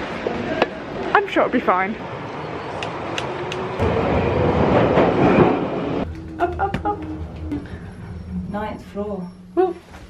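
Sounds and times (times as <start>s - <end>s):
train rumbling and rattling: 0.0s - 10.0s.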